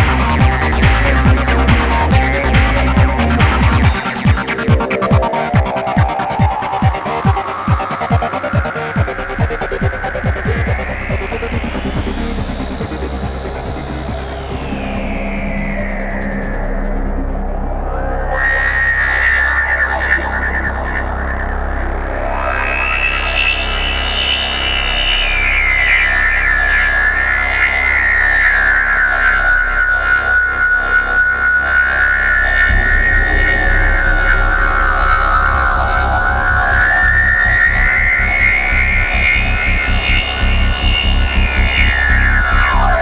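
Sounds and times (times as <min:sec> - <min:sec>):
deep synth drone: 0:00.0 - 0:43.0
pulsing bass and beat: 0:00.0 - 0:43.0.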